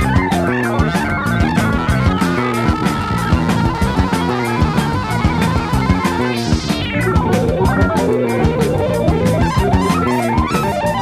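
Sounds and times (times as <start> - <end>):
jazz-rock fusion band: 0.0 - 11.0.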